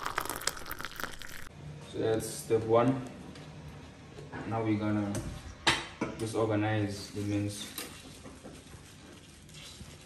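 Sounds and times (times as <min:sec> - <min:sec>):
oil pouring into hot pot: 0:00.0 - 0:01.5.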